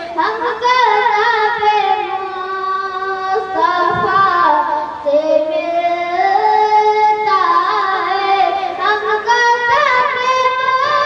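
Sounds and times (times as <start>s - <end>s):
boy singing into a microphone: 0.0s - 11.0s.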